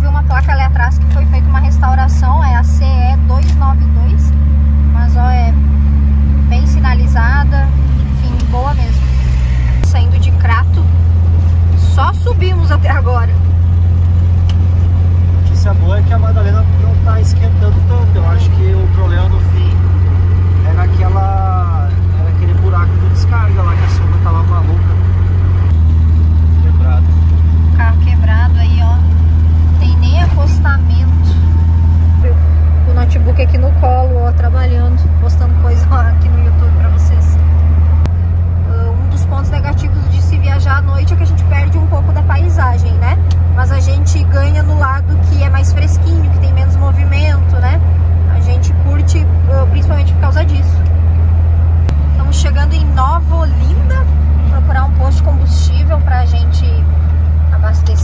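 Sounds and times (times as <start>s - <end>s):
engine drone inside vehicle: 0.0s - 58.0s.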